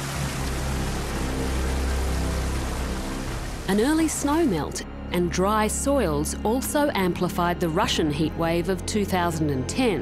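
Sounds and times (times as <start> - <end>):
water rushing: 0.0 - 4.8
music with low sustained notes: 0.0 - 10.0.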